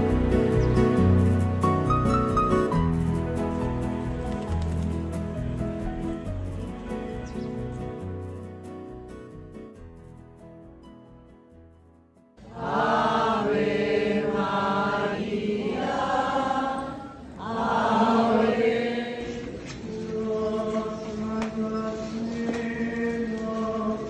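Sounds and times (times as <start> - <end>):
voices chanting: 12.4 - 24.0.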